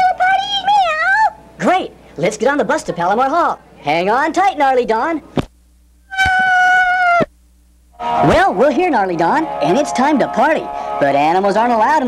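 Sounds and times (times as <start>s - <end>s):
high-pitched squeal: 8.0s - 11.4s.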